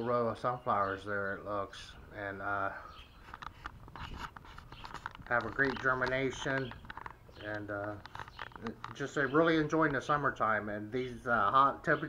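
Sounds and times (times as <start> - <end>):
camera handling clicks and scrapes: 3.2 - 9.0.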